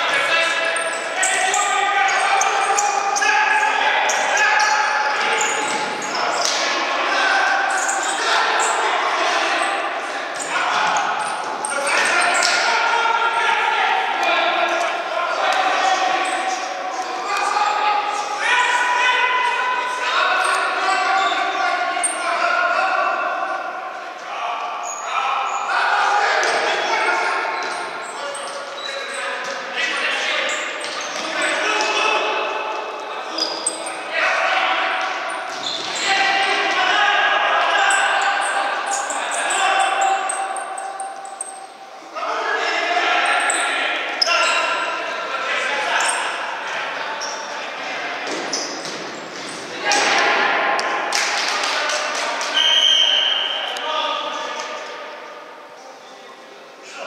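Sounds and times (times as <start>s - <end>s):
players calling out in hall: 0.0s - 57.0s.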